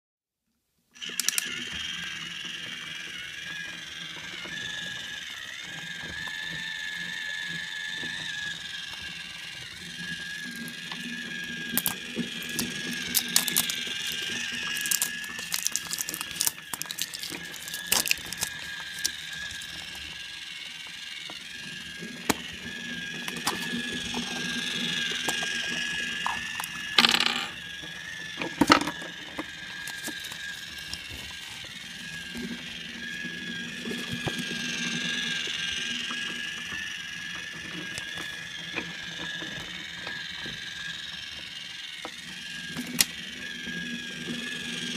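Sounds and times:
toys clicking: 1.0s - 9.4s, 10.0s - 32.6s
plastic wrapper crinkling: 11.8s - 20.0s, 23.3s - 24.6s, 29.7s - 31.8s.

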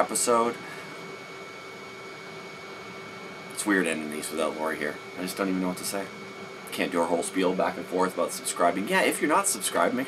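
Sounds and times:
appliance hum: 0.0s - 10.0s
faint constant tones: 0.0s - 10.0s.

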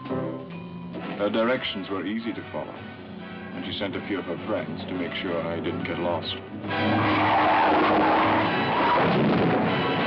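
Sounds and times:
tyre squeal on dirt: 6.8s - 9.1s.

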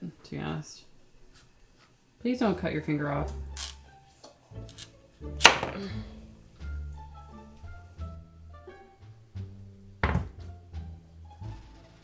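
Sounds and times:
background music: 2.2s - 12.0s
knife knocking on cutting board: 10.0s - 10.4s.

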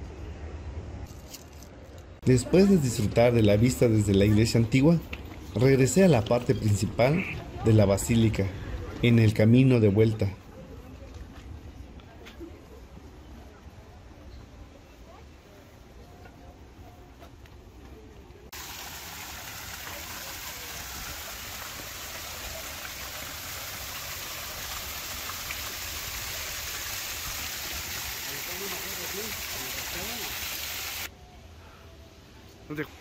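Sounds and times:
open-air background: 0.0s - 33.0s
waterfall splashing into pool: 18.5s - 31.1s.

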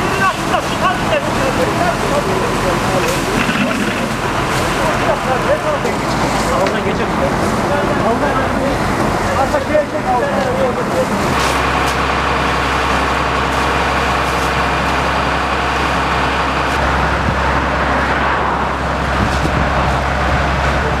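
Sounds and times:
fire engine drone: 0.0s - 21.0s.

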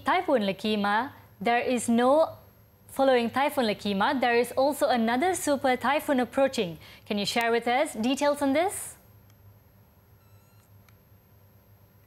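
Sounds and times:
faint steady hum: 0.0s - 12.0s
faint short tone: 10.2s - 10.8s
click: 10.6s - 11.0s.

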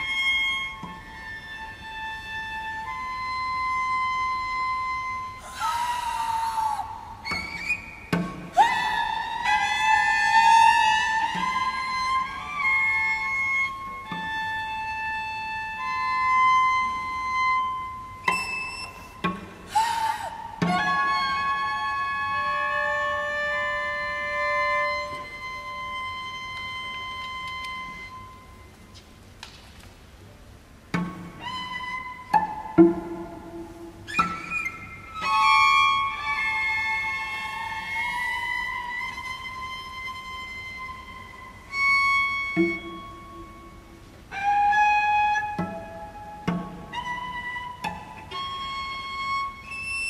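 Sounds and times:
cellos playing held notes: 30.9s - 49.7s.

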